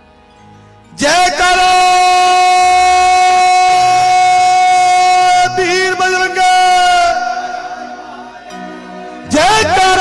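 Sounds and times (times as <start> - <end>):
man's amplified voice holding note: 0.9 - 8.3, 9.2 - 10.0.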